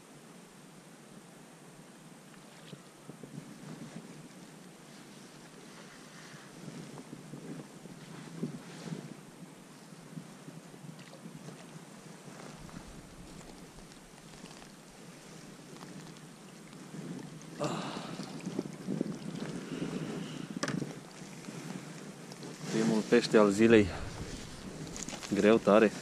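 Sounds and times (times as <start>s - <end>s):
small rustles: 2.3s - 17.6s, 18.4s - 26.0s
rippling river water: 10.8s - 26.0s
wind buffeting microphone: 12.3s - 16.0s, 16.8s - 26.0s.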